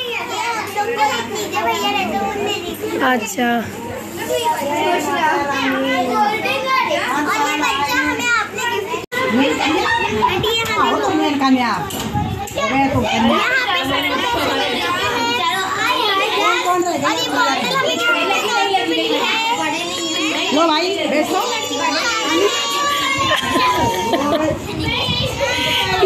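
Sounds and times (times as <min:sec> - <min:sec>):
young children chattering: 0:00.0 - 0:26.0.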